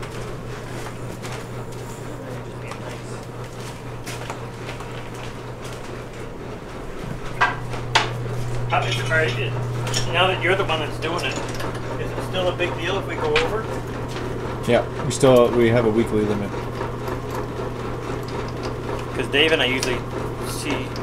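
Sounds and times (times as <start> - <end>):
low electrical hum: 0.0 - 21.0.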